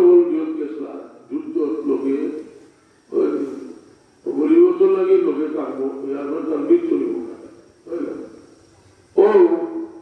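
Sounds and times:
man preaching in chanted delivery: 0.0s - 8.4s, 9.2s - 10.0s.

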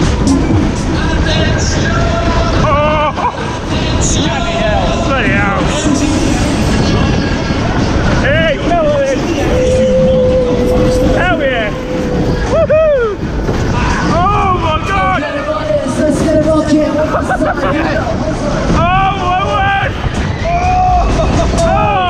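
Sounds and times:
fairground ride rumble: 0.0s - 22.0s
wind buffeting microphone: 0.0s - 22.0s
riders whooping: 7.7s - 15.3s, 17.1s - 22.0s.

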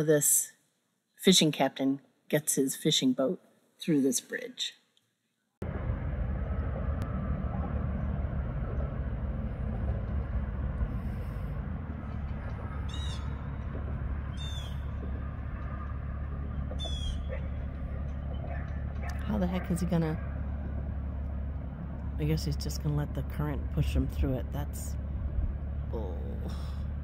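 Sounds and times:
low waterside rumble: 5.6s - 27.0s.

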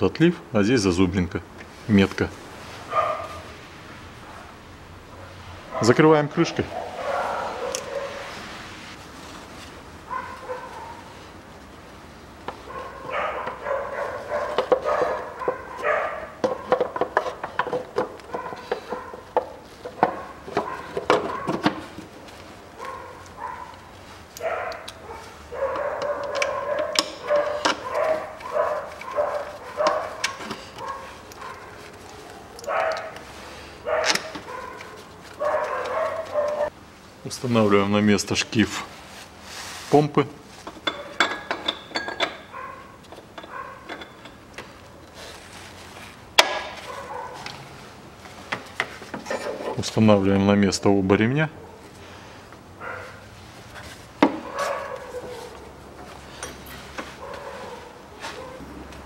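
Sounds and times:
dog yelping and barking: 2.9s - 3.5s, 6.7s - 8.3s, 10.1s - 11.1s, 12.7s - 16.9s, 18.3s - 21.8s, 22.7s - 33.2s, 33.8s - 36.7s, 42.4s - 44.1s, 46.4s - 47.6s, 52.8s - 53.3s, 54.4s - 56.4s, 57.1s - 58.8s.

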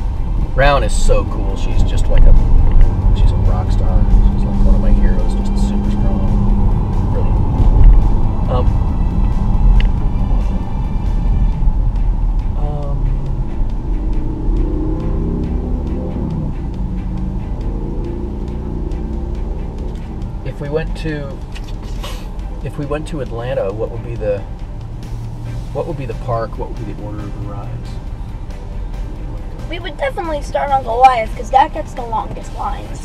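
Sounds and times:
road and engine rumble in car: 0.0s - 33.0s.

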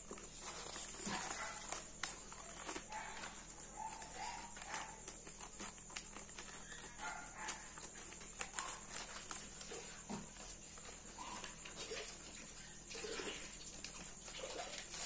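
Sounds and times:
paper rustling: 0.0s - 15.0s
scissors snipping paper: 0.1s - 9.8s.

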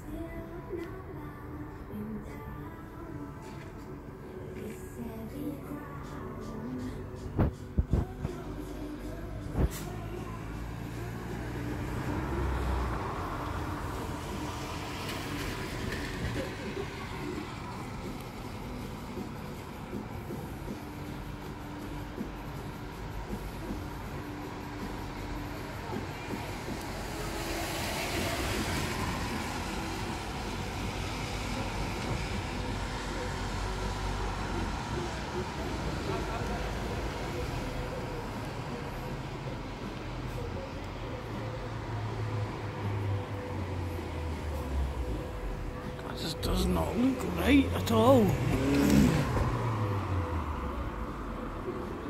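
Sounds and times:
traffic rumble: 0.0s - 52.0s.

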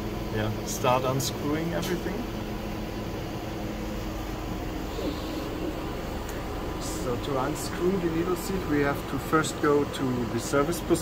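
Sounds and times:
machinery and ventilation hum: 0.0s - 11.0s.

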